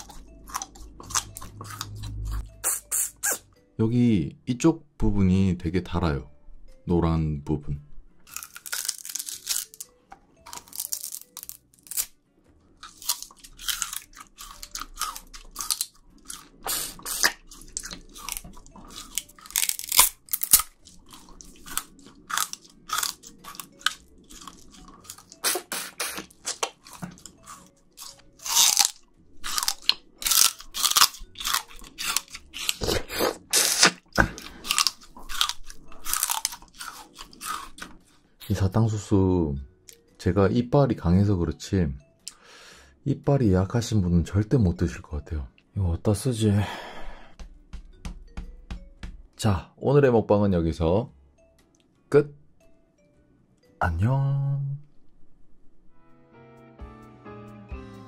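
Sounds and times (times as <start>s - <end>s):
sugar cane crunching when chewed: 0.0s - 3.4s, 8.3s - 12.2s, 12.8s - 38.0s.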